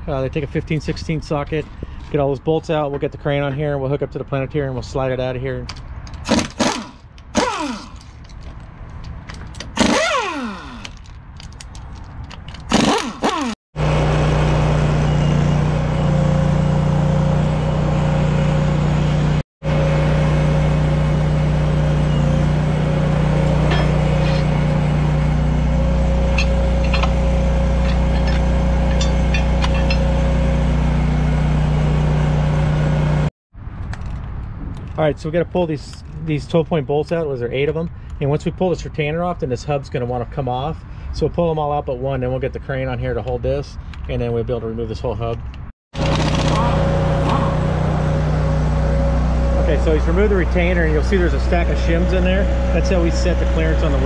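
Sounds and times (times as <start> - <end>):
impact wrench spinning bolts: 6.1 - 8.5, 9.4 - 13.6, 26.3 - 30.2, 46.0 - 46.7
truck engine idling with whine: 13.8 - 33.3, 46.0 - 54.0.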